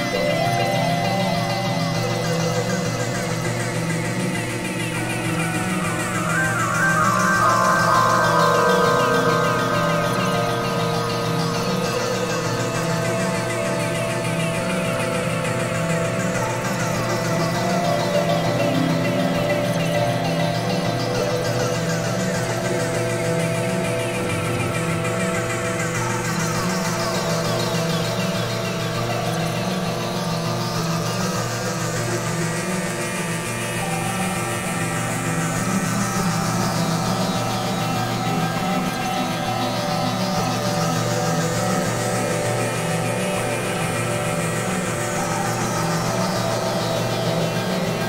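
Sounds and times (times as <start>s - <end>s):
ambient synthesizer music: 0.0s - 48.0s.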